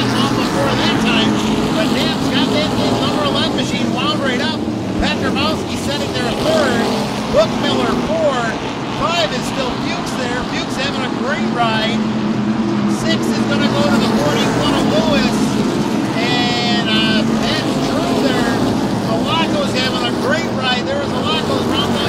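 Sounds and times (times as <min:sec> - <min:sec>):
race car engines passing: 0:00.0 - 0:22.0.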